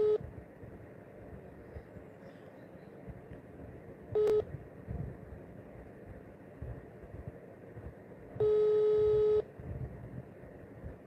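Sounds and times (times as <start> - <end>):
telephone ringing tone beep: 0.0 - 0.2, 4.2 - 4.5, 8.4 - 9.4.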